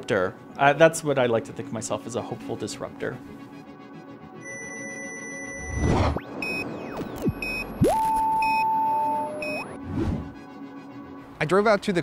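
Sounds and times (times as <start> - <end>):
loud steady tone: 4.4 - 9.8
short beeps: 4.4 - 9.8
falling and rising pitch sweeps: 4.4 - 10.4
electronic whoosh: 5.6 - 8.6.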